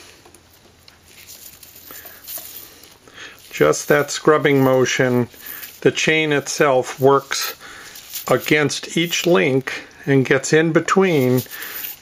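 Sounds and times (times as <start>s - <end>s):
chain links rustling: 1.0s - 9.5s, 11.1s - 12.0s.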